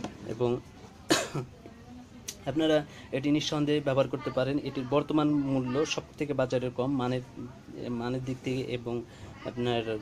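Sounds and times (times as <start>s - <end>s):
short cough: 1.1s - 1.5s
man speaking: 2.5s - 10.0s.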